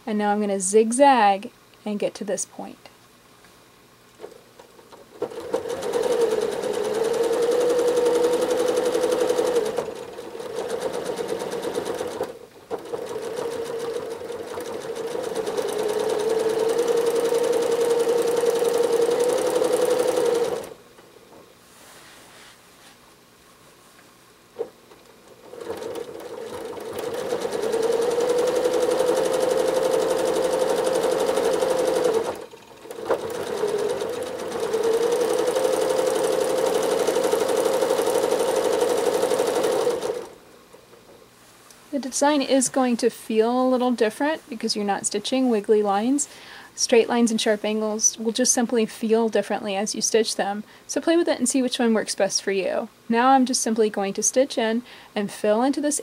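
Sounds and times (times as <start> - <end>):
sewing machine stitching: 4.2 - 20.8, 24.6 - 40.4.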